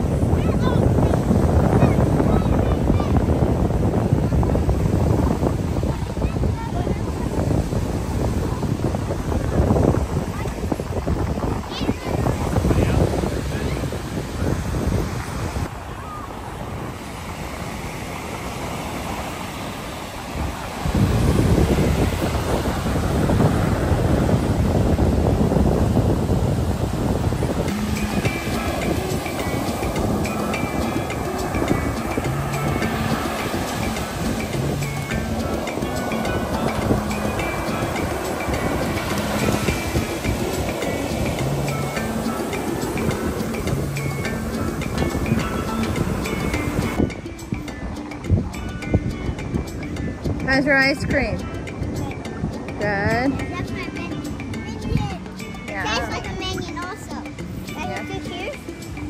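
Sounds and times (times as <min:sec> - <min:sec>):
surf washing up beach: 0:00.0 - 0:59.0
wind on microphone: 0:00.0 - 0:59.0
background music: 0:26.7 - 0:59.0.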